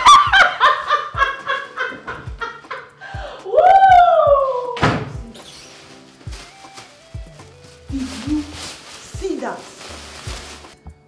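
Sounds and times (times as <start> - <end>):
woman laughing: 0.0 - 3.0.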